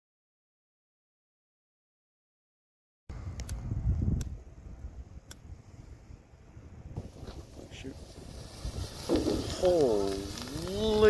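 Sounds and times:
wind noise on microphone: 3.1 - 11.0.

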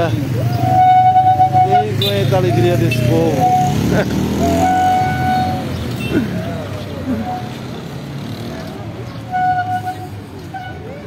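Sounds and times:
cars passing: 0.0 - 11.0
motorcycles running: 0.0 - 11.0.

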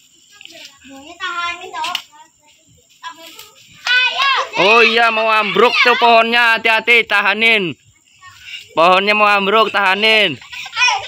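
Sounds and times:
children's voices: 0.0 - 6.8, 7.8 - 11.0.

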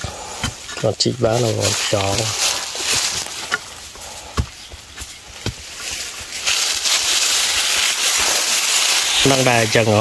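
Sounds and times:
dry leaves and soil scraping: 0.0 - 10.0.

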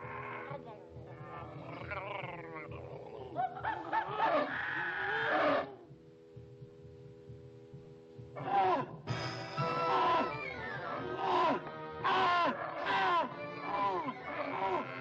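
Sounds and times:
cartoon monsters growling and roaring: 1.2 - 5.7, 11.0 - 15.0.

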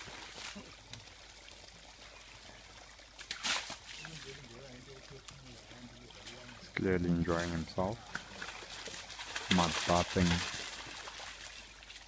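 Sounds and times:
elephant splashing mud and water: 0.0 - 12.0
trickling water: 0.0 - 12.0.

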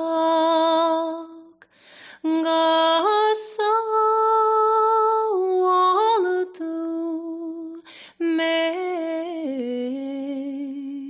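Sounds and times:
woman singing unaccompanied: 0.0 - 1.6, 2.2 - 11.0.

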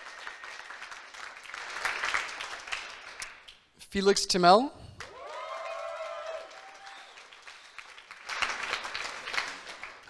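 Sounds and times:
audience applauding: 0.0 - 3.5, 5.0 - 10.0
audience cheering: 5.0 - 7.5.

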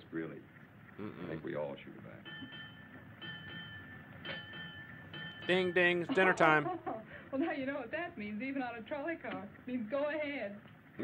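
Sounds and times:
bell ringing: 2.2 - 6.8.

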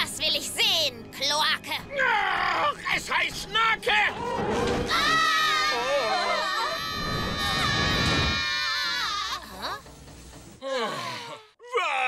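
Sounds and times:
cartoon characters wailing: 4.9 - 9.4.

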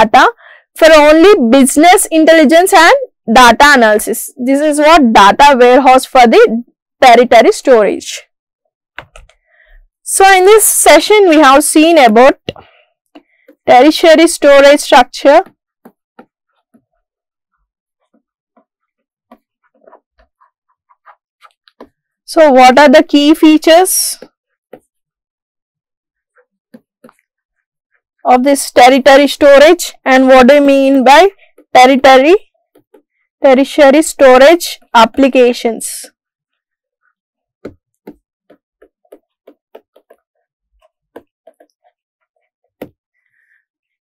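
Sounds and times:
stylus scratching on tablet: 10.3 - 25.1, 26.2 - 44.0.

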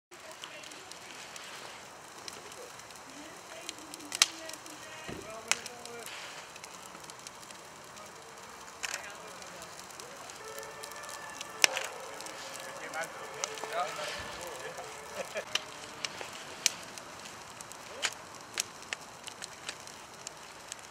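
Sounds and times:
faint voices: 0.1 - 20.8
fire rushing: 0.1 - 20.9
sharp pops from fire: 0.2 - 20.9.

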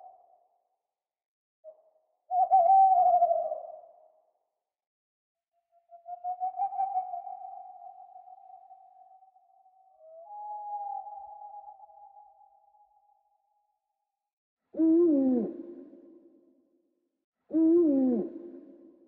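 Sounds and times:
owl hoots with echo: 1.7 - 4.3, 5.7 - 13.3, 14.8 - 16.0, 17.5 - 18.9.

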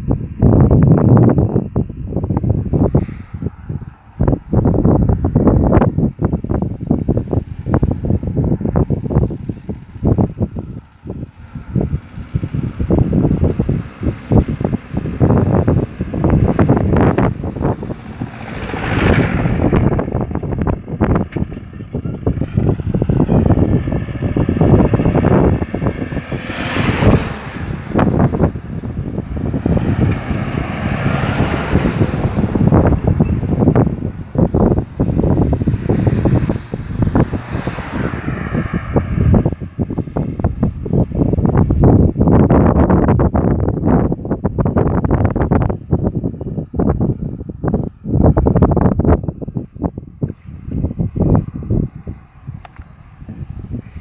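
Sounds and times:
engine whine: 0.0 - 54.0
vehicles driving past: 0.0 - 54.0
wind buffeting microphone: 0.0 - 54.0.

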